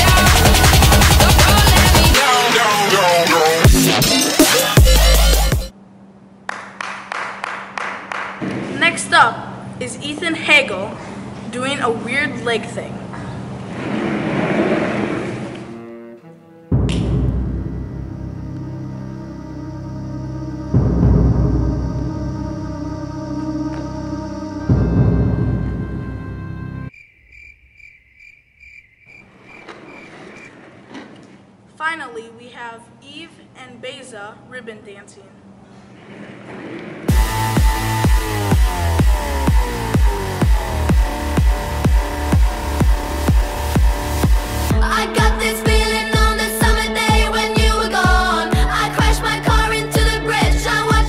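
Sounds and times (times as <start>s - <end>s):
person clapping hands: 6.5s - 8.5s
heavy music hit: 13.8s - 26.9s, 36.3s - 51.0s
dramatic music: 14.8s - 26.9s, 37.1s - 51.0s
cricket chirping: 26.9s - 30.6s.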